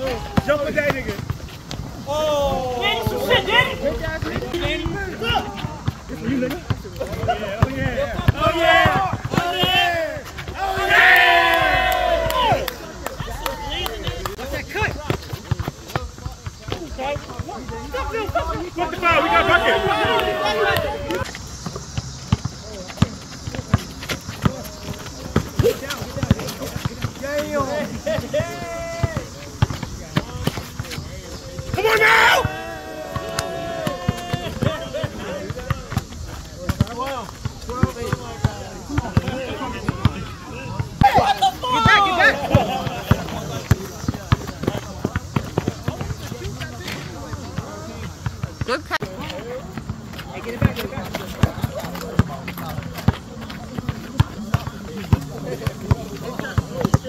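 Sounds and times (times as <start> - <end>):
basketball bouncing on asphalt: 0.0 - 2.0, 2.9 - 10.9, 11.6 - 57.0
players shouting: 0.0 - 21.8, 22.4 - 57.0.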